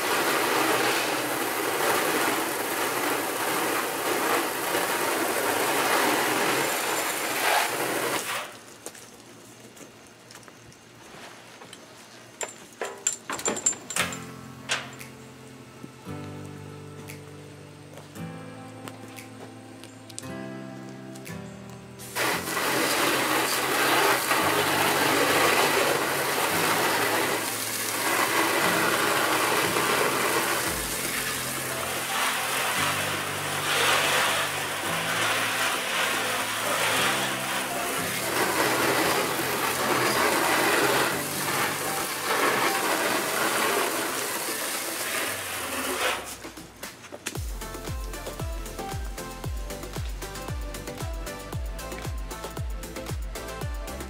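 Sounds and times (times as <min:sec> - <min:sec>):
garden hose spray hissing: 0:00.0 - 0:12.3, 0:22.0 - 0:54.0
background music: 0:14.0 - 0:54.0.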